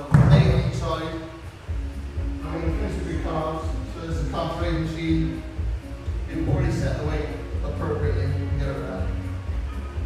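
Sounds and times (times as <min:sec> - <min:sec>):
background music with vocals: 0:00.0 - 0:10.0.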